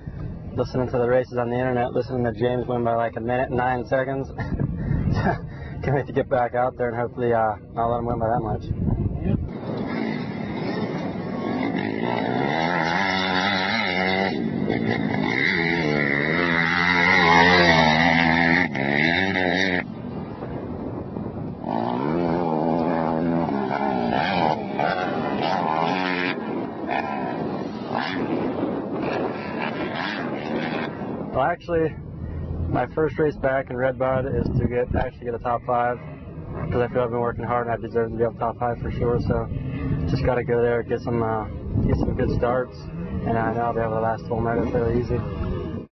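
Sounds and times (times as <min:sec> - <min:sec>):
motocross bike engine revving: 0:09.4 - 0:31.4, 0:34.1 - 0:45.9.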